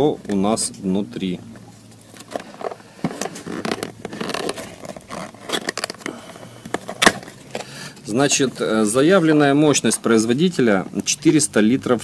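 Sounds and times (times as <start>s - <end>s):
cardboard box rustling and scraping: 2.1s - 6.1s.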